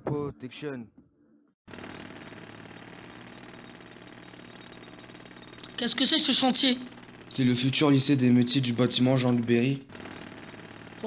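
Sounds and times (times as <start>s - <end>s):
jackhammer hammering: 1.7s - 11.0s.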